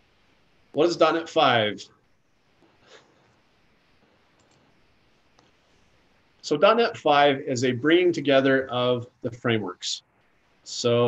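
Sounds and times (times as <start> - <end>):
faint computer mouse clicks: 4.3 - 4.7.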